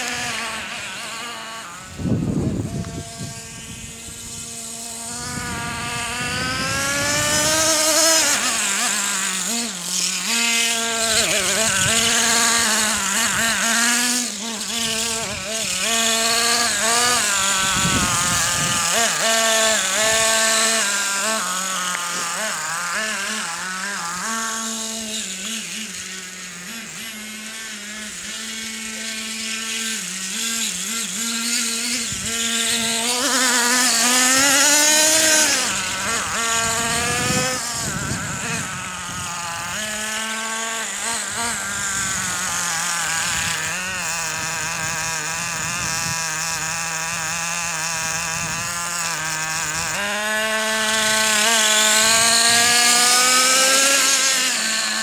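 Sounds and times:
rc truck engine whining: 0.0s - 55.0s.

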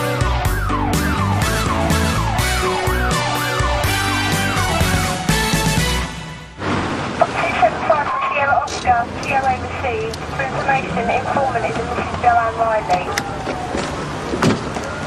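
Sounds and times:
police car engine humming: 0.0s - 5.4s, 7.4s - 15.0s.

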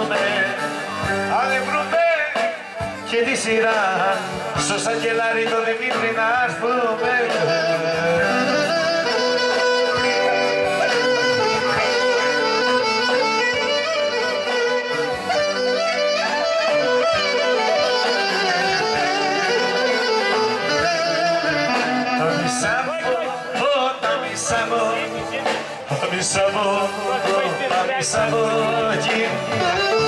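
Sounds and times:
folk dance band playing: 0.0s - 30.0s
violin melody: 6.9s - 23.0s, 29.5s - 30.0s.

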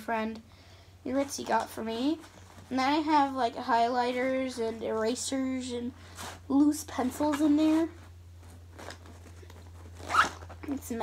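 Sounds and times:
steady low hum: 0.0s - 11.0s
rustling of pencil pouch: 7.7s - 10.6s.

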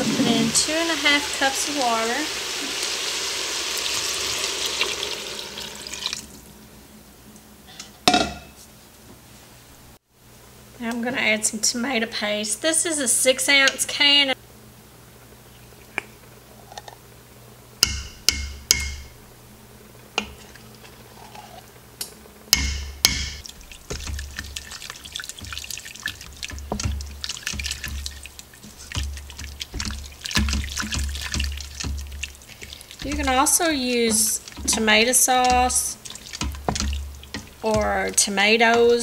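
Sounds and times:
wooden spatula scraping steel pot: 0.0s - 1.5s, 23.4s - 39.0s
can tapping on metal pot: 22.6s - 39.0s.

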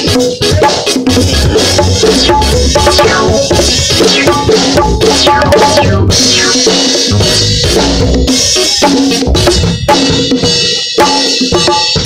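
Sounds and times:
bongos played by hand: 0.0s - 12.0s
drum kit playing: 0.0s - 12.0s.

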